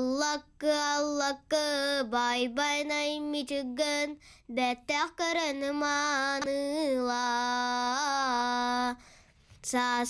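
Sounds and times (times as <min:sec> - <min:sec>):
boy singing unaccompanied: 0:00.0 - 0:09.0, 0:09.6 - 0:10.0
boy breathing: 0:04.2 - 0:04.5, 0:08.9 - 0:09.6.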